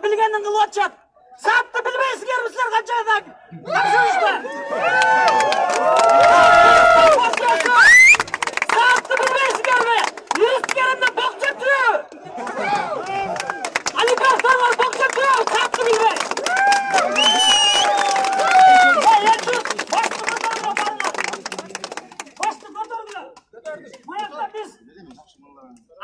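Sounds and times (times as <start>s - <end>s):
man speaking through megaphone: 0.0s - 4.4s, 8.6s - 12.1s, 14.0s - 16.3s, 18.8s - 26.0s.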